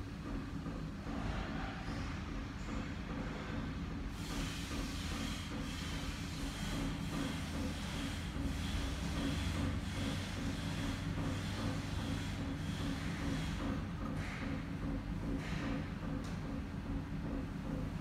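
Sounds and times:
low mechanical hum: 0:00.0 - 0:18.0.

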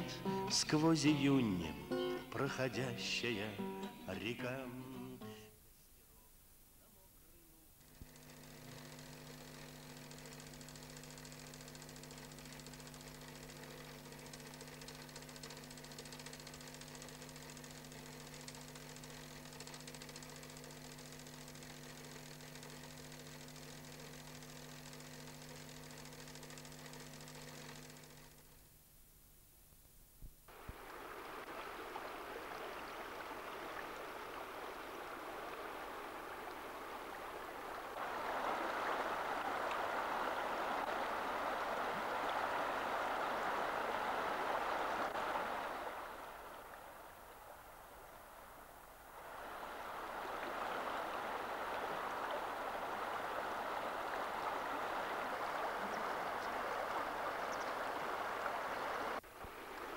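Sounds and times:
steady mechanical drone: 0:07.8 - 0:28.6
water rushing: 0:30.5 - 0:59.9.

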